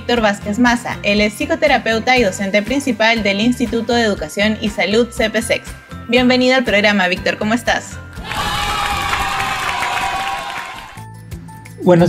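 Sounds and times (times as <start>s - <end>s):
crowd cheering and applauding: 8.2s - 11.2s.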